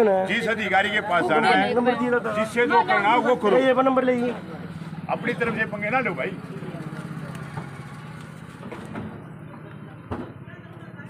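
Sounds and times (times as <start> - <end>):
vehicle engine idling: 0.3 - 11.0.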